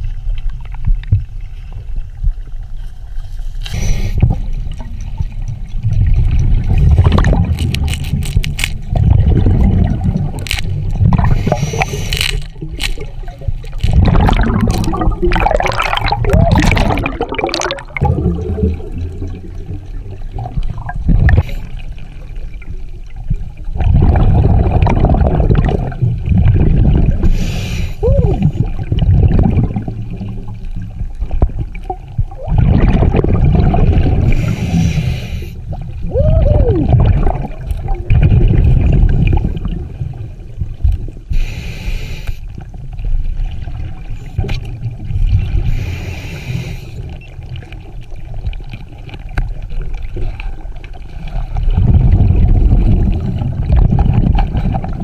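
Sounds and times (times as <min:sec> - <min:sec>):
regulator inhale hiss: 0:03.6 - 0:04.2, 0:11.3 - 0:12.2, 0:27.2 - 0:28.0, 0:34.3 - 0:35.6, 0:41.3 - 0:42.6, 0:45.6 - 0:47.2
underwater exhaled bubbles rushing: 0:03.8 - 0:41.6, 0:42.5 - 0:55.0.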